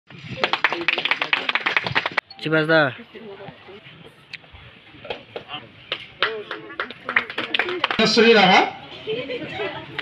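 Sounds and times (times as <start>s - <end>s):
group clapping: 0.4s - 2.2s, 5.1s - 8.4s.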